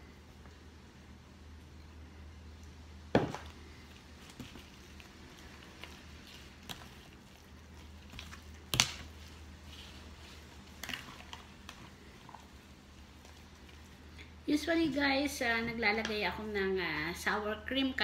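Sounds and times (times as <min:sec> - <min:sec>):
spatula stirring wet batter: 0:00.3 - 0:16.4.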